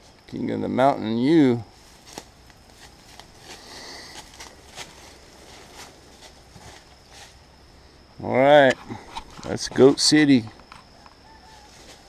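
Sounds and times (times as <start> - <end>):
rustling: 1.7 - 7.4, 10.6 - 12.0
footsteps through grass: 1.7 - 7.5, 11.5 - 12.0.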